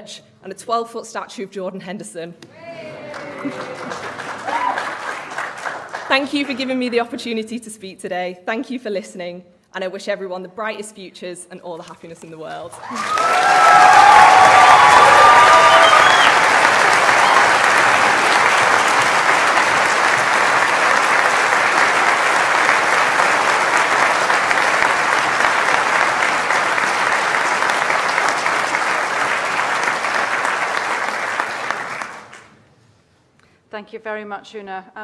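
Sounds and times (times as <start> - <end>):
audience applauding: 2.6 - 7.0, 12.8 - 32.5.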